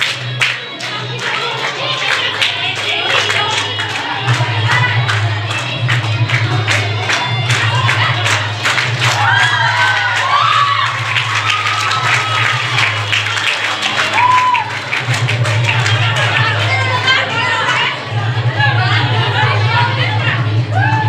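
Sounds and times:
crowd of women cheering: 9.0s - 17.9s, 20.6s - 21.0s
high-pitched whoops and shouts: 14.0s - 14.7s, 20.7s - 21.0s.

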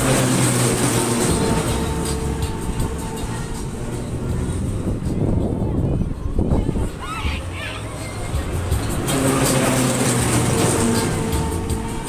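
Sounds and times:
wind buffeting microphone: 0.5s - 12.0s.

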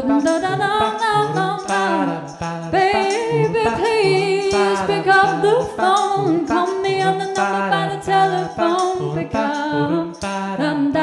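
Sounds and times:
stacked vocal harmonies: 0.0s - 11.0s.

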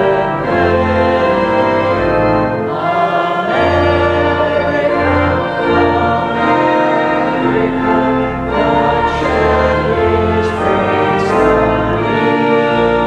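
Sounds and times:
voices singing a hymn: 0.0s - 13.0s.

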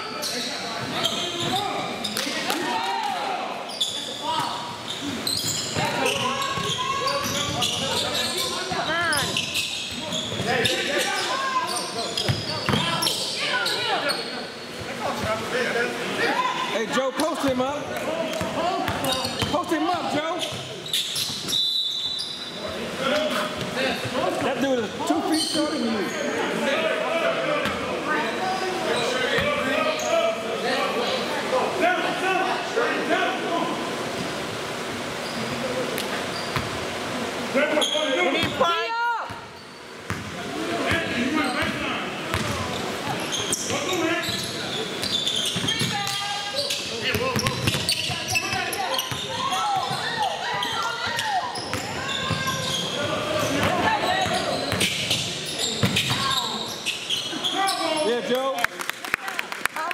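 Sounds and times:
voices echoing in gym: 0.0s - 59.9s.

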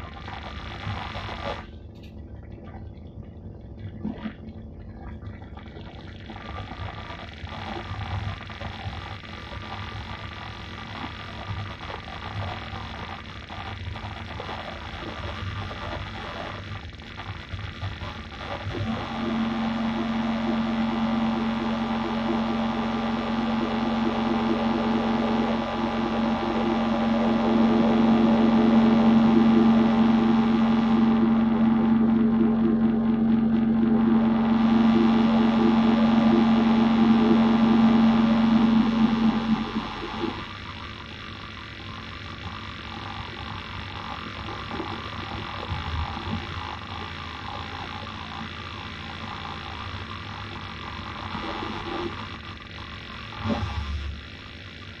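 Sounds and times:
electronic noise drone: 0.0s - 55.0s.

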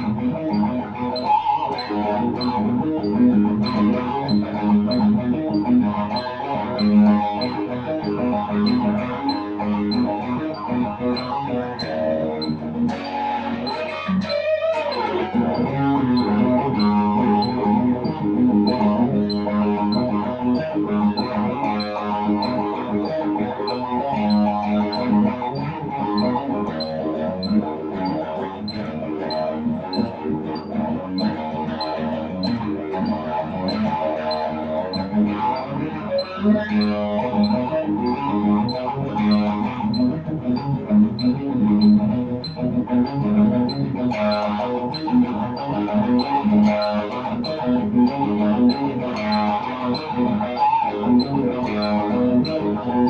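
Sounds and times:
electric guitar rock lead: 0.0s - 53.0s
steady ticking beat: 0.0s - 53.0s.

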